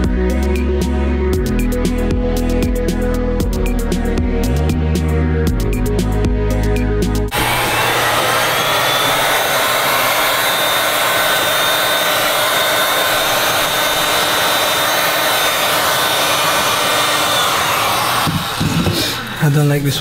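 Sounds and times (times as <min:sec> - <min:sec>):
music: 0:00.0 - 0:07.4
heat gun blowing air: 0:07.3 - 0:19.8.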